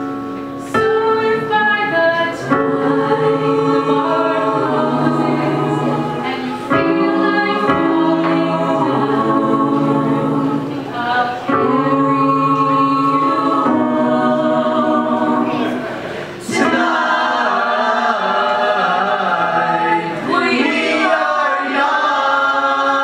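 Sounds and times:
group of voices singing in harmony: 0.0s - 23.0s.

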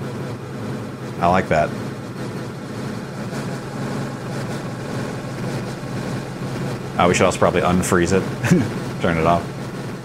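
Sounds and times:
hissing synth wash: 0.0s - 10.0s
low hum: 0.0s - 10.0s.

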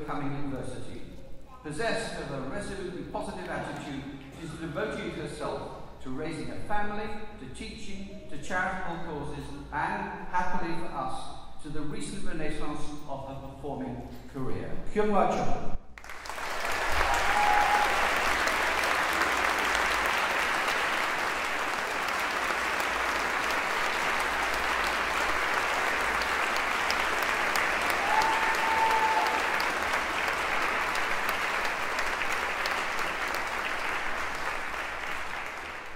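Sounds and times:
audience applauding: 16.0s - 35.9s.

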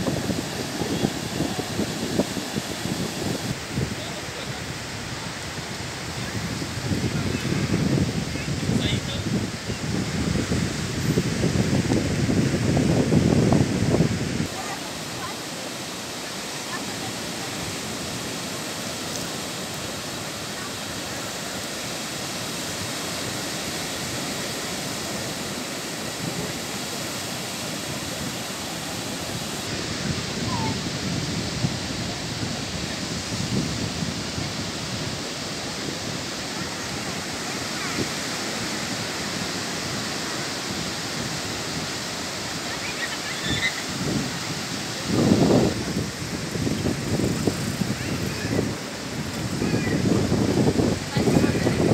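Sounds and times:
ocean surf breaking: 0.0s - 51.9s
wind gusts on microphone: 0.0s - 51.9s.

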